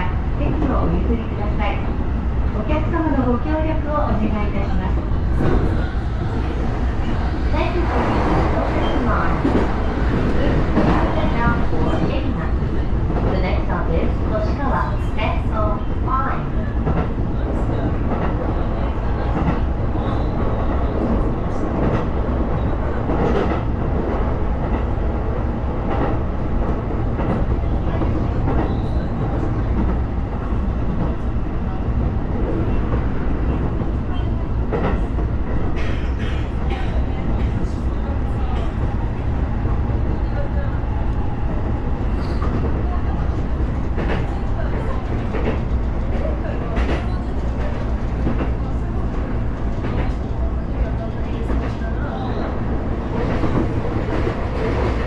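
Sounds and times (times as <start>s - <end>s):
train wheels rumbling on rail: 0.0s - 55.0s.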